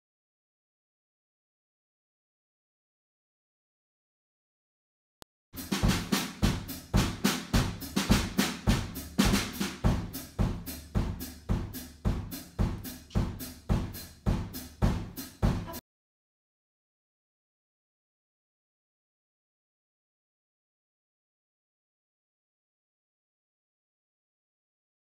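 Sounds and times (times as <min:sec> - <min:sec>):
drum kit beat: 0:05.6 - 0:15.8.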